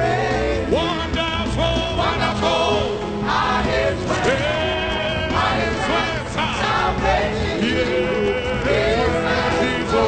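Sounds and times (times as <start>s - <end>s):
congregation singing a gospel song: 0.0s - 10.0s.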